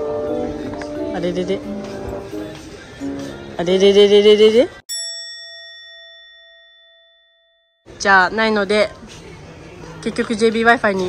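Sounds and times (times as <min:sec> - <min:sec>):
bell-like chime: 0:04.9 - 0:07.9.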